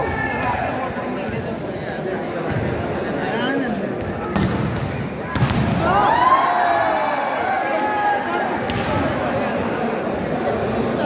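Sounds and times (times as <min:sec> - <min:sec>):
crowd shouting and cheering: 0:00.0 - 0:01.2, 0:04.3 - 0:11.0
crowd chatter in indoor hall: 0:00.0 - 0:11.0
volleyball smacks: 0:04.3 - 0:05.8.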